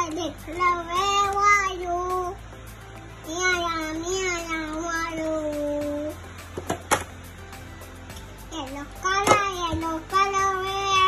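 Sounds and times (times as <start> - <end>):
toddler singing: 8.5 - 11.0.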